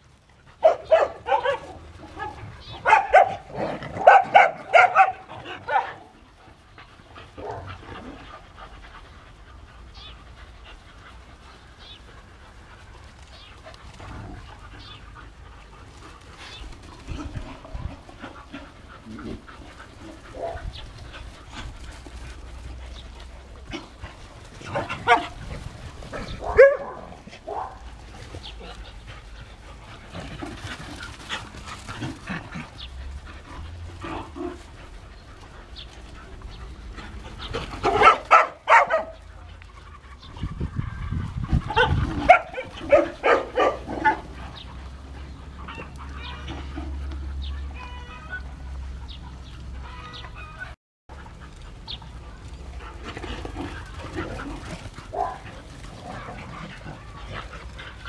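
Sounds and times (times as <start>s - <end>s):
dogs barking and yelping: 0.0s - 58.0s.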